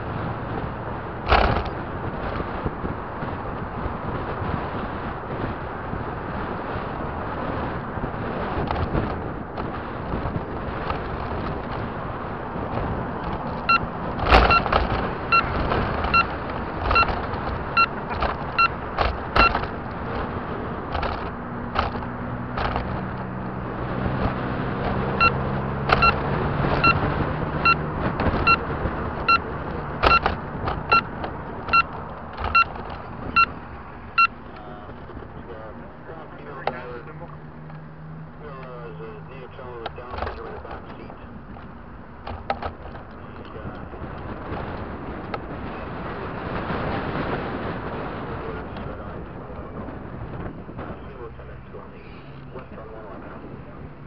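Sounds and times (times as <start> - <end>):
low engine hum: 0.0 - 54.0
wind and road noise: 0.0 - 54.0.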